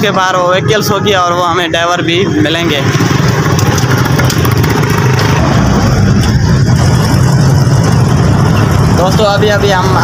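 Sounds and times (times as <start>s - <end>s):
motor vehicle engine rumbling: 0.0s - 10.0s.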